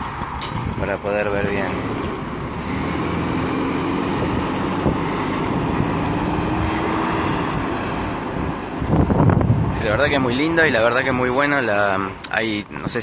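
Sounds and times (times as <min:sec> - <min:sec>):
engine hum: 0:00.0 - 0:12.7
road traffic passing: 0:00.0 - 0:13.0.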